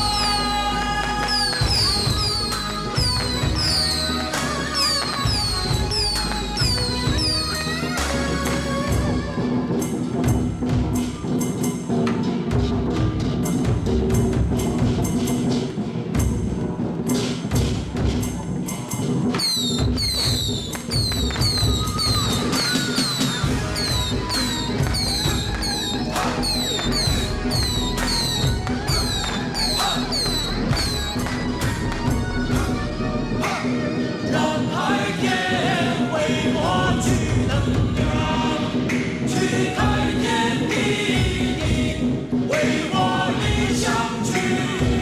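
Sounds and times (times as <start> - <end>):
drums beating: 0.0 - 45.0
voices chanting: 20.9 - 45.0.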